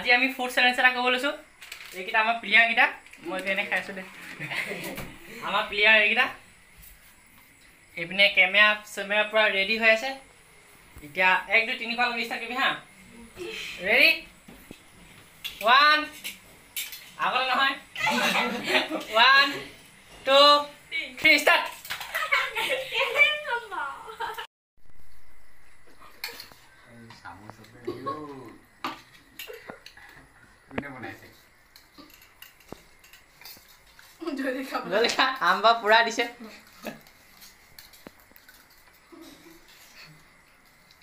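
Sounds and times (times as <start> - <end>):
spoons clinking on steel plates: 15.4 - 17.2, 31.7 - 34.2.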